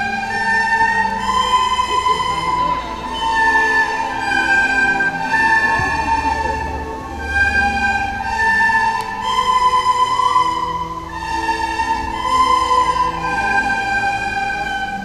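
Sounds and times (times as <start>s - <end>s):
children playing recorders: 0.0s - 15.0s.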